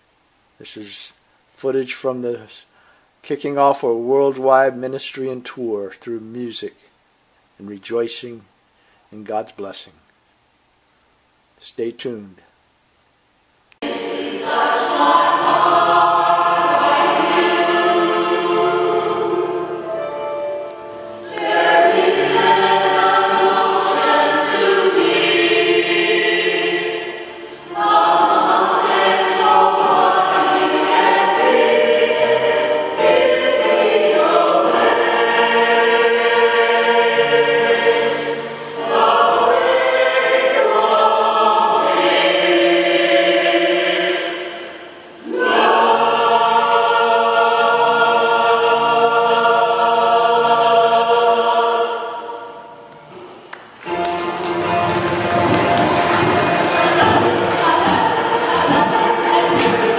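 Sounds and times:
women's choir singing gospel: 0:13.8 - 0:59.9.

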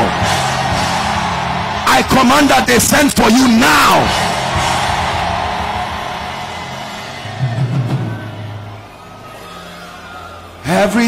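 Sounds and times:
shouted line echoing: 0:00.0 - 0:11.0.

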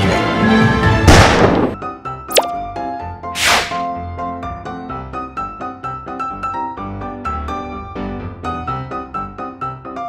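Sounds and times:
cartoon pop sound effect: 0:02.3 - 0:02.6.

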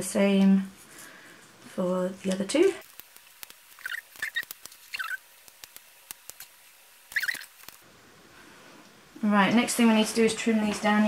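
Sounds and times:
short squeaks: 0:03.8 - 0:05.2, 0:07.1 - 0:07.6.

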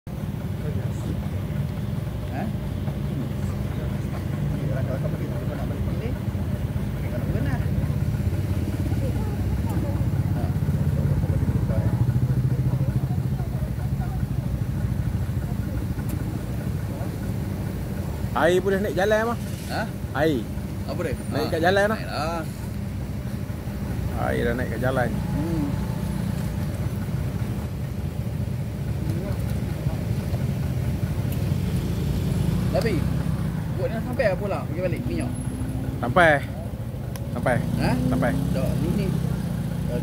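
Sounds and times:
faint voices: 0:00.1 - 0:40.0
outboard motor running: 0:00.1 - 0:40.0.

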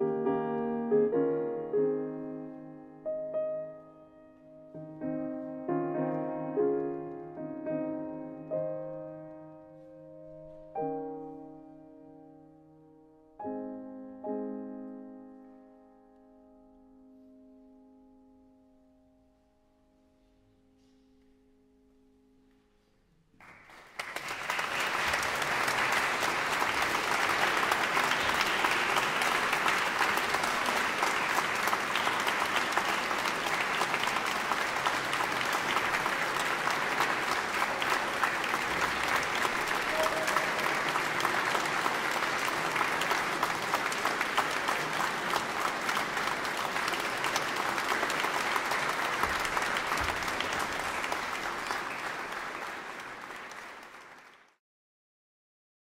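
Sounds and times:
audience applause: 0:23.4 - 0:54.6.

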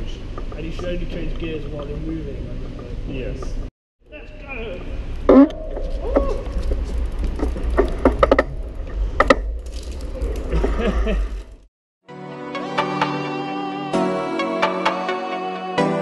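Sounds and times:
riders speaking: 0:00.0 - 0:05.0
bicycle ride rumble: 0:00.0 - 0:11.7
bike clicks and rattles: 0:05.8 - 0:11.7.

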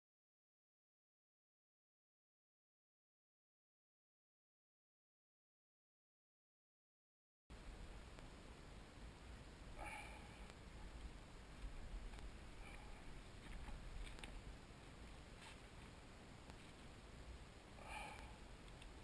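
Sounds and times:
faint clicks and handling noises: 0:10.4 - 0:16.9, 0:18.1 - 0:19.0.

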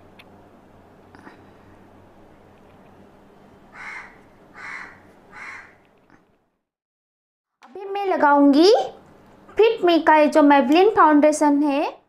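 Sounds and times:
short bird calls: 0:03.7 - 0:05.8.

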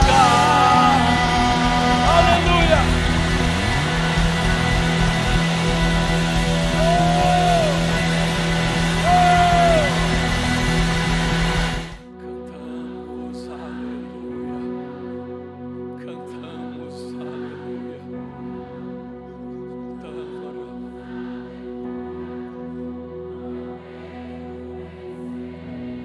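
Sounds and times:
rock band playing worship music: 0:00.0 - 0:15.9
soft sustained keyboard chords: 0:00.0 - 0:26.0.

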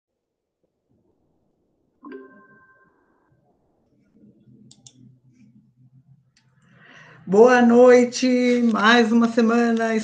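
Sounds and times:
electronic two-tone chime: 0:02.0 - 0:03.3.

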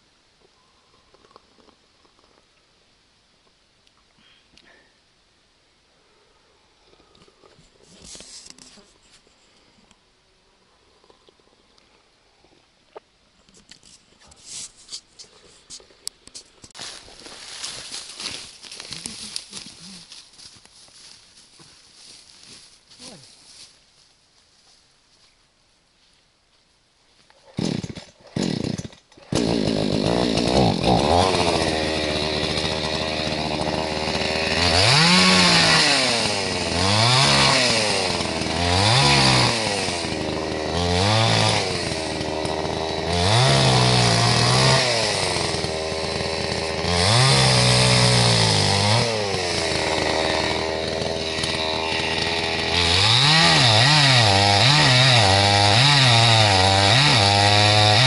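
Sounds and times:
chainsaw cutting log: 0:27.6 - 0:58.0
chainsaw pull-starting: 0:27.6 - 0:58.0
chainsaw revving: 0:27.6 - 0:58.0.

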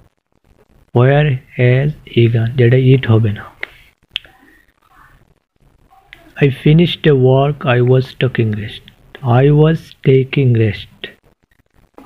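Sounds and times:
faint room noise: 0:00.0 - 0:12.0.

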